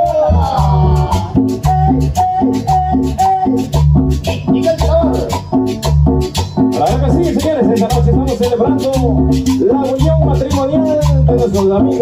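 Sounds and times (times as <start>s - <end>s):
bouncing bass line: 0.0s - 12.0s
rattling metal percussion: 0.0s - 12.0s.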